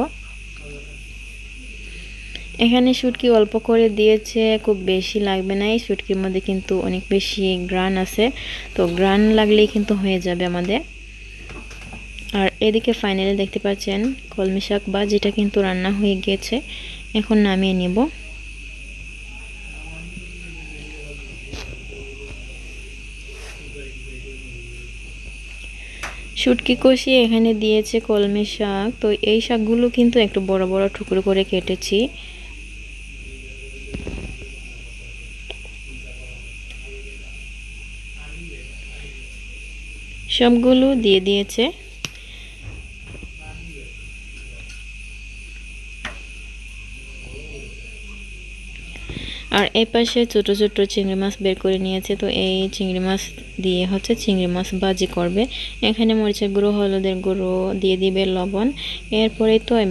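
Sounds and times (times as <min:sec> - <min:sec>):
insect chirring: 0:00.0 - 0:59.9.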